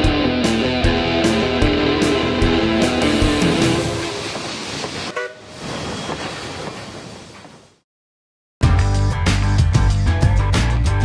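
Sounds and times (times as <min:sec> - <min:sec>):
train rumbling by: 0:01.1 - 0:07.8
train horn toot: 0:03.7 - 0:04.4, 0:05.1 - 0:05.5.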